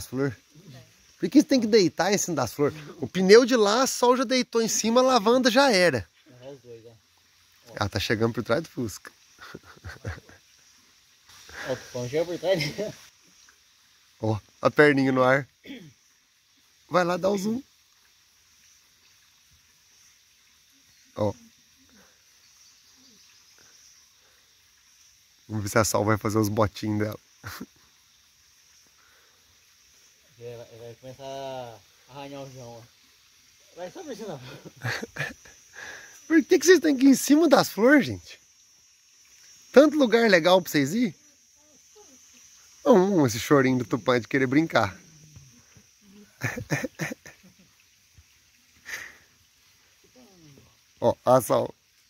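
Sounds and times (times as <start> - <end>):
faint high insect hum: 0.0 - 52.0.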